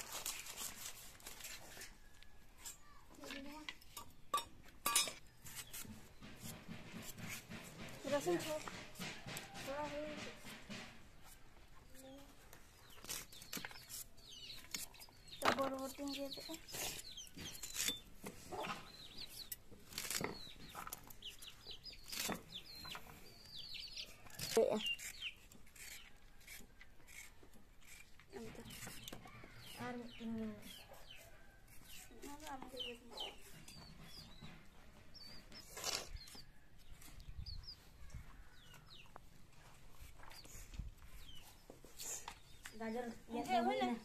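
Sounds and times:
chicks cheeping: 20.4s - 26.1s, 32.7s - 39.2s, 40.3s - 42.6s
beans sliced on a blade: 35.6s - 36.4s.

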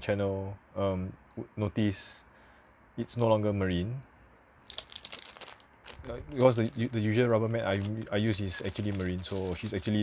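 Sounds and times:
plastic bag crinkling: 4.6s - 10.0s.

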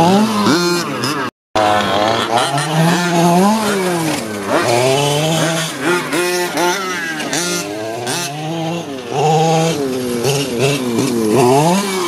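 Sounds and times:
small two-stroke engine revving: 0.0s - 12.0s.

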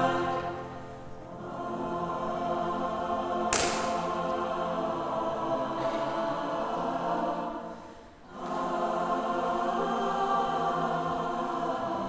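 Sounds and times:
large mixed choir singing: 0.0s - 12.0s.

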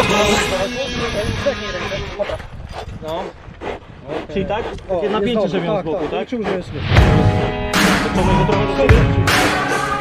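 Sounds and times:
dog vocalizing: 1.0s - 7.6s.

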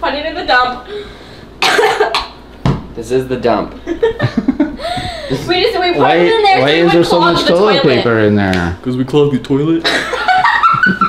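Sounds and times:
person coughing: 1.6s - 2.3s.

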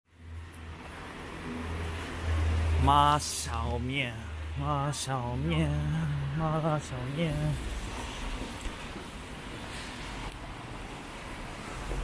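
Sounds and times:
traffic rumble and hiss: 0.1s - 12.0s.

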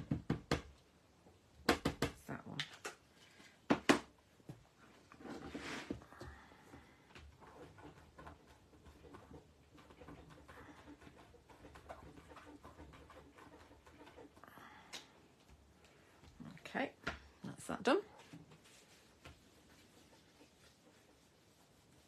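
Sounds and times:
soft rustle and handling: 13.3s - 22.0s.

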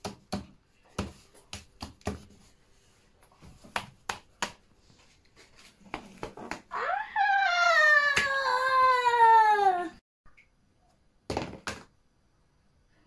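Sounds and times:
loud wailing cry: 6.7s - 10.0s.

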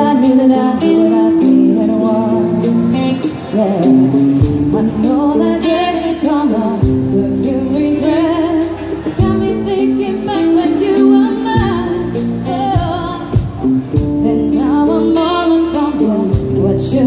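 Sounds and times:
live pop band playing: 0.0s - 17.0s.

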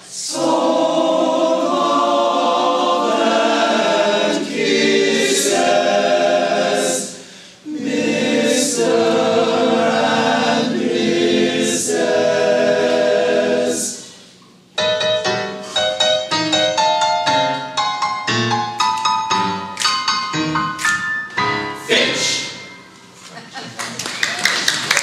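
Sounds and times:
men's chorus singing: 0.2s - 14.0s.

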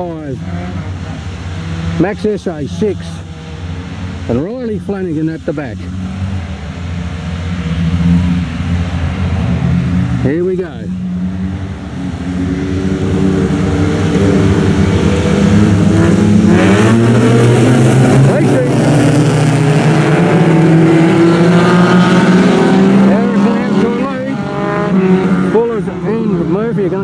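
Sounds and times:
race car engines revving: 0.0s - 27.0s.

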